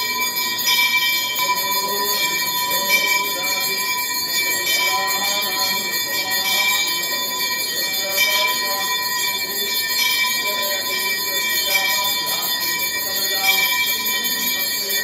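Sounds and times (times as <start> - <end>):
bells ringing rapidly: 0.0 - 15.0
faint voices wavering: 1.3 - 15.0.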